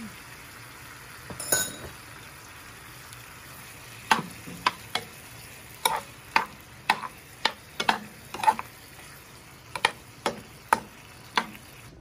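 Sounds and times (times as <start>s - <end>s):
low sizzle of frying: 0.0s - 12.0s
metal spoon scraping a pan: 4.1s - 11.7s.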